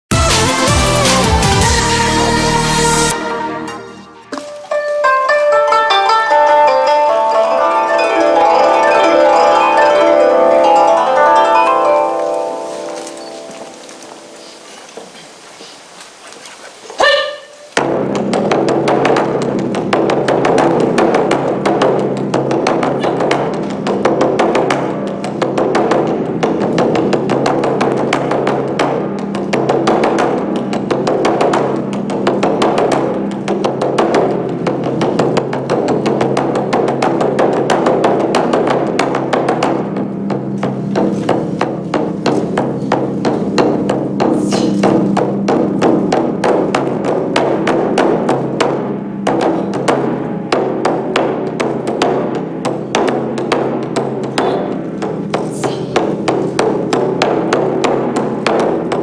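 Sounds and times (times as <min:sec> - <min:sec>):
taiko drums beaten fast: 0:17.0 - 0:59.0.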